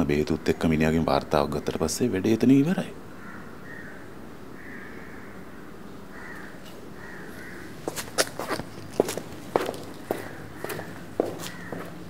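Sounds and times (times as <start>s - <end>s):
crows cawing: 3.1s - 8.0s, 9.6s - 12.0s
footsteps on a hard floor: 7.9s - 12.0s.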